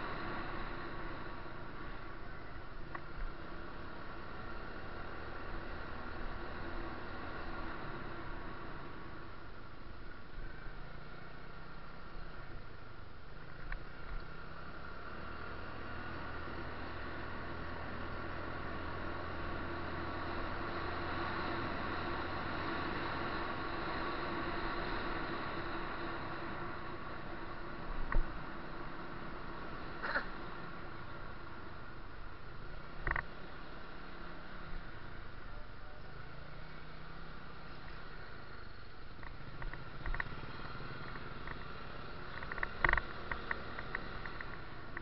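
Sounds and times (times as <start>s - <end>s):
vehicle engine and road noise: 0.0s - 45.0s.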